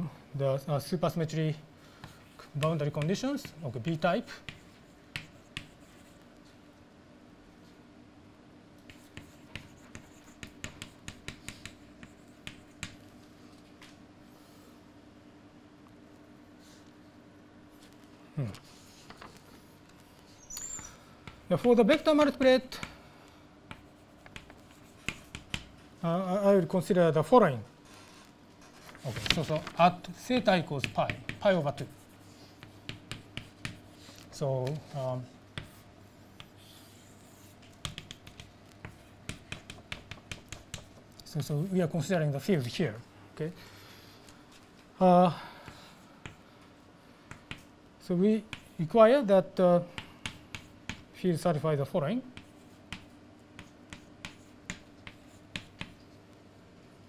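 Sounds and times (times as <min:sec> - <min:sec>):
chalk tapping on chalkboard: 0:02.0 - 0:06.0, 0:08.8 - 0:13.0, 0:23.7 - 0:25.8, 0:30.4 - 0:31.9, 0:32.6 - 0:34.8, 0:35.6 - 0:41.1, 0:47.3 - 0:47.7, 0:48.5 - 0:48.8, 0:49.9 - 0:51.1, 0:52.3 - 0:56.1.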